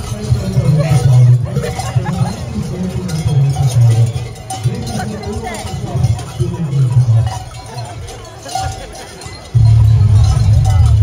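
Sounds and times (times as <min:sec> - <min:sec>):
large cowbells clanging: 0:00.0 - 0:11.0.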